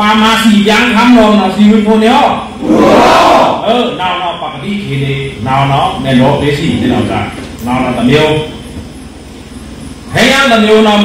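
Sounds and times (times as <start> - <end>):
man speaking into a microphone: 0.0 - 2.5, 3.6 - 8.6, 10.1 - 11.0
sound system background noise: 0.0 - 11.0.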